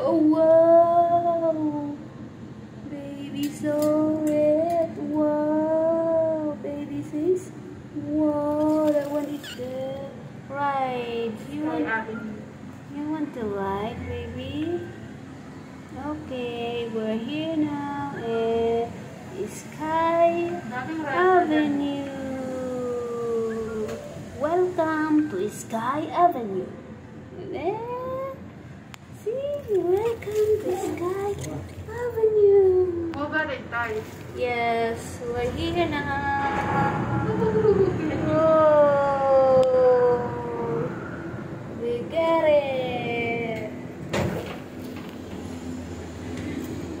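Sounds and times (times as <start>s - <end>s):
cable car machinery humming: 0.0s - 33.9s, 34.6s - 47.0s.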